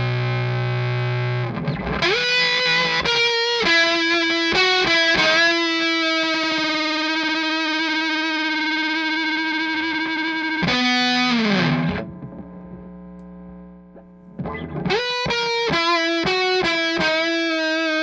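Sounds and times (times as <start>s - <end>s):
amp hum: 0.0s - 18.0s
fuzzed electric guitar notes: 0.0s - 18.0s.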